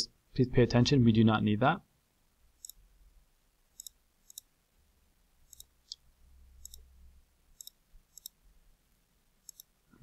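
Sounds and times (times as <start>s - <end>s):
computer mouse clicks: 2.6s - 2.8s, 3.8s - 4.5s, 5.5s - 6.0s, 6.6s - 6.9s, 7.6s - 8.4s, 9.4s - 9.7s.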